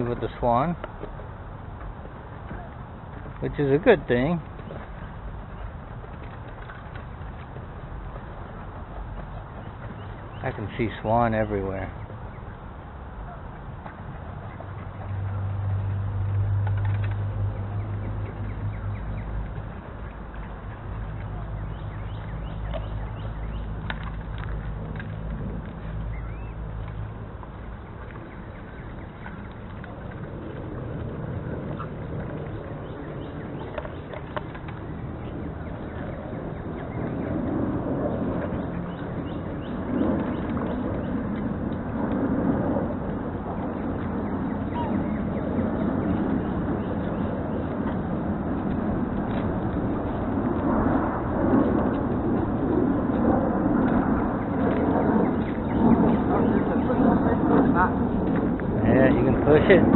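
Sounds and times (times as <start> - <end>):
outdoor noise: 0.0 - 59.9.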